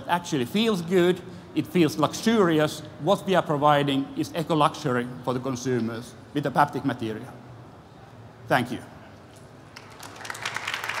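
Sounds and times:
audience applause: 0:09.8 - 0:11.0.

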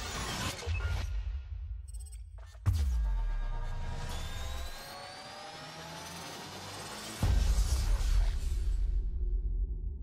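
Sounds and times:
synth riser with gliding tones: 0:03.6 - 0:08.2.

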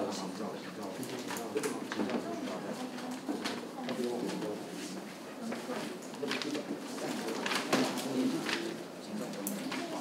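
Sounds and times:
paper sheets rustling: 0:06.3 - 0:08.8.

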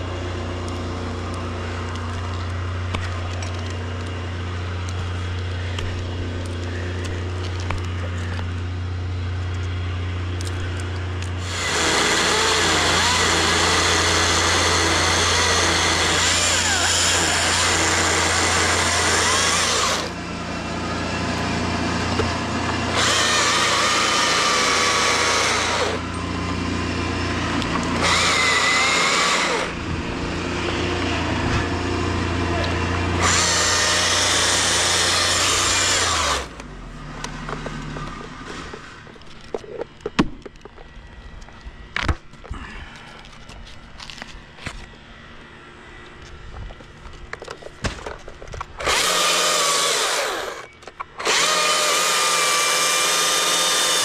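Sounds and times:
chainsaw cutting wood: 0:11.3 - 0:20.2, 0:21.8 - 0:29.8, 0:30.4 - 0:36.7, 0:48.7 - 0:54.0.

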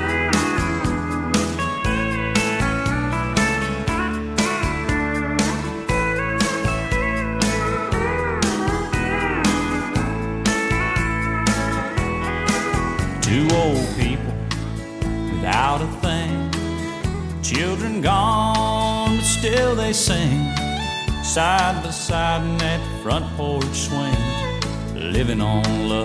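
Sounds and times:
steel guitar solo: 0:00.0 - 0:17.4
bass: 0:00.0 - 0:26.0
rhythm guitar: 0:00.0 - 0:26.0.

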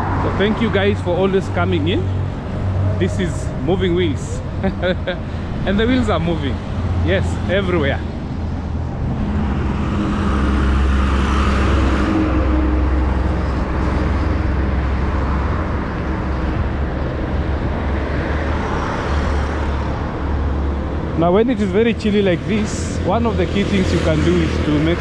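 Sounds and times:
road traffic rumble: 0:00.0 - 0:25.0
vehicle passing: 0:00.0 - 0:25.0.

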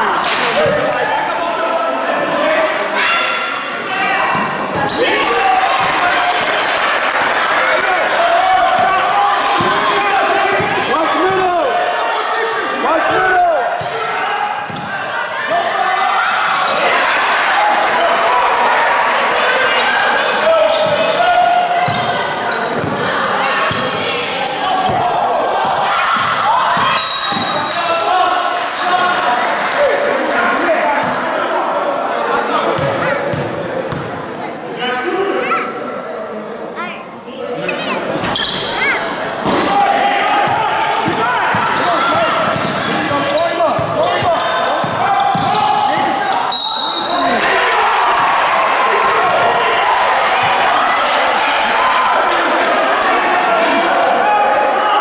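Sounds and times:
people shouting: 0:23.0 - 0:28.4, 0:38.8 - 0:55.0.

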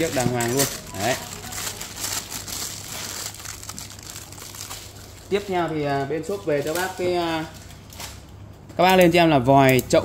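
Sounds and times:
plastic bag crinkling: 0:00.0 - 0:08.4.

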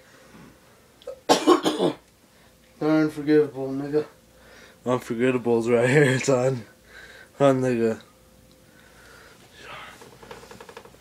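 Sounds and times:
person coughing: 0:01.1 - 0:02.0.

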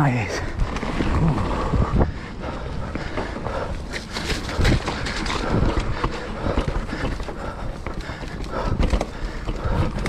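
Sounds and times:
bike tyres rumbling over dirt: 0:00.0 - 0:10.0
bike knocking and rattling: 0:00.5 - 0:10.0.

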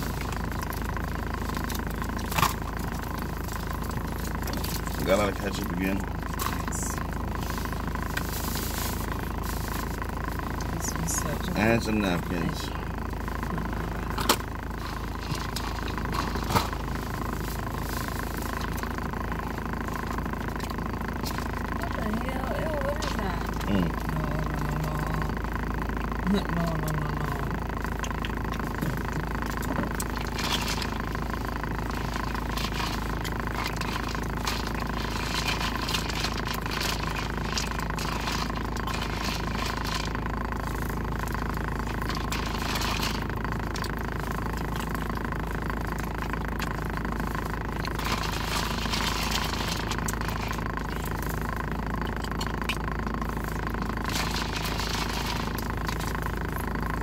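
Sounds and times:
car engine idling: 0:00.0 - 0:57.0
chewing mouth noises: 0:27.6 - 0:56.7.

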